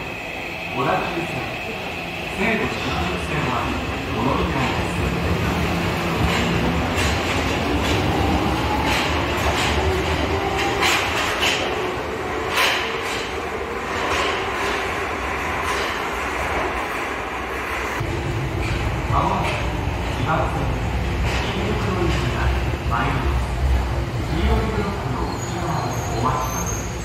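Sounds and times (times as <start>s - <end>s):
train running rumble: 2.3s - 27.0s
wheels clicking over rail joints: 6.2s - 11.8s.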